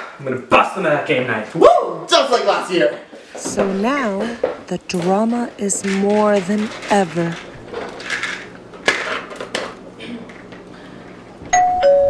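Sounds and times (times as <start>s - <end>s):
doorbell ding-dong chime: 11.5s - 12.0s.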